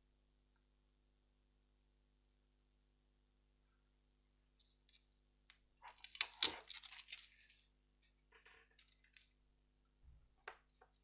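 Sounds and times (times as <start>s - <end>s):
tape crackling and peeling: 5.8s - 7.7s.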